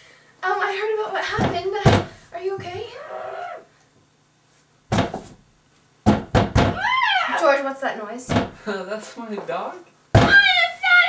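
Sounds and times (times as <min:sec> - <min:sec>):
heavy thumps: 0:01.2 - 0:03.0, 0:04.9 - 0:06.9, 0:08.2 - 0:08.7, 0:10.1 - 0:10.6
loud thud: 0:01.3 - 0:02.8, 0:04.9 - 0:05.4, 0:06.1 - 0:06.8, 0:08.3 - 0:08.6, 0:10.2 - 0:10.4.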